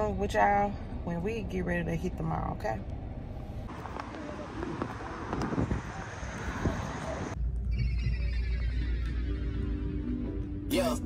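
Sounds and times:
outdoor street noise: 0:00.0 - 0:11.0
wind on microphone: 0:03.8 - 0:08.3.

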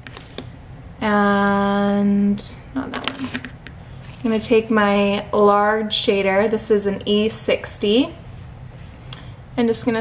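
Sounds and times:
woman speaking: 0:01.0 - 0:03.4, 0:04.2 - 0:08.2, 0:09.6 - 0:10.0.

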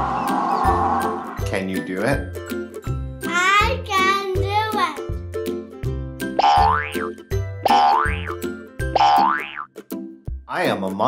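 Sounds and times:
children's song backing music: 0:00.6 - 0:06.0.

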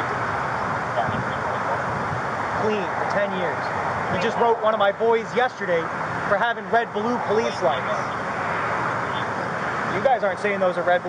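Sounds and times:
road traffic going by: 0:00.0 - 0:11.0.

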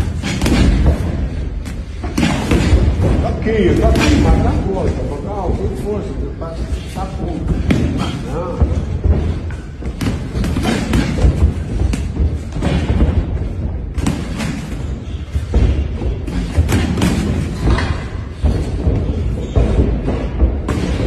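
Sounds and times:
boxing gloves thudding: 0:00.0 - 0:04.5, 0:07.5 - 0:21.0.

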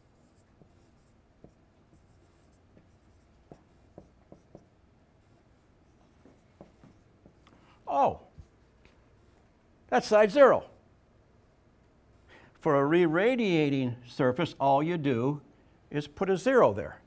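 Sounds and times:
marker writing on whiteboard: 0:00.0 - 0:07.6
man speaking: 0:07.9 - 0:08.3, 0:09.9 - 0:10.8, 0:12.6 - 0:17.0.

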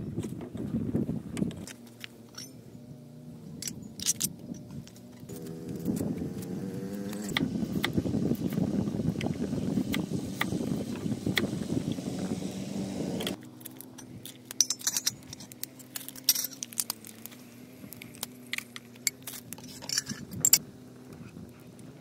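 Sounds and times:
wind on microphone: 0:00.0 - 0:01.8, 0:02.7 - 0:13.4, 0:19.6 - 0:22.0
steady low hum: 0:00.0 - 0:22.0.

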